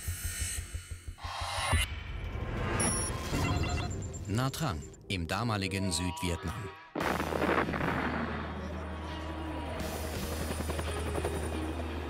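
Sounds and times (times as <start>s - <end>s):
helicopters flying overhead: 8.2s - 12.0s.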